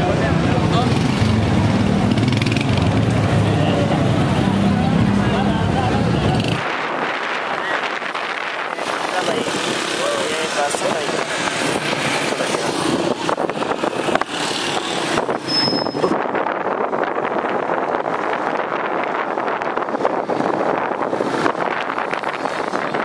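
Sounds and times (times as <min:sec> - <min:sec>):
road traffic noise: 0:00.0 - 0:23.0
wind rushing over microphone: 0:00.0 - 0:23.0
voices: 0:03.0 - 0:13.7.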